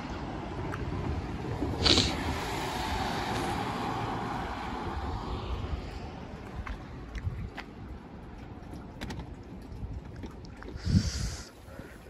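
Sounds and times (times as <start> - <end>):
vehicle passing on wet road: 0.0 - 7.1.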